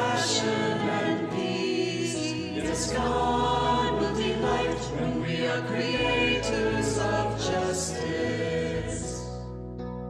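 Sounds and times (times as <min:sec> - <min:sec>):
choir singing a hymn: 0:00.0 - 0:09.6.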